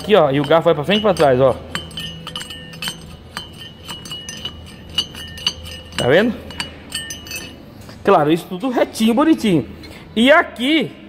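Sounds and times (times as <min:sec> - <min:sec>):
metal parts clinking: 0:00.0 - 0:08.7.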